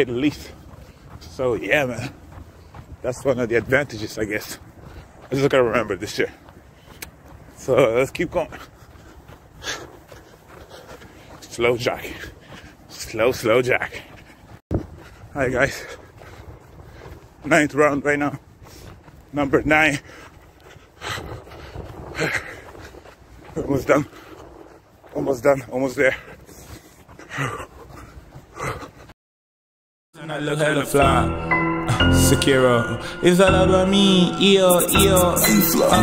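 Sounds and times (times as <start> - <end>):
man panting while running: 0.0 - 29.2.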